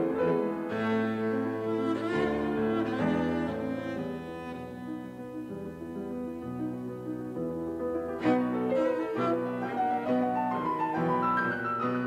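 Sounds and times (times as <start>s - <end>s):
cello and piano classical music: 0.0s - 12.0s.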